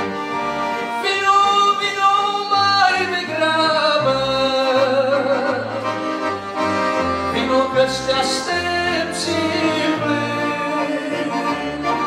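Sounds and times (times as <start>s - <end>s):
piano accordion: 0.0s - 12.0s
man singing: 1.0s - 5.9s, 7.3s - 12.0s.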